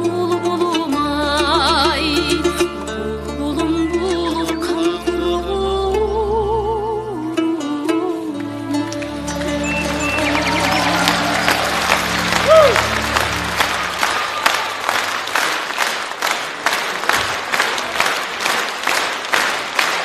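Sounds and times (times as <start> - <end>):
song's held notes: 0.0 - 15.0
rhythmic clapping in unison: 8.4 - 20.0
audience applauding: 9.0 - 20.0.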